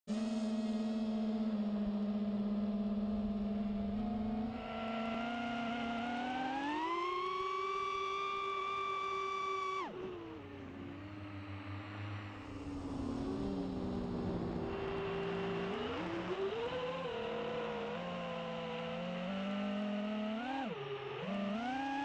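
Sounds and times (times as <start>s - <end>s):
drone motors and propellers whining: 0.1s - 22.0s.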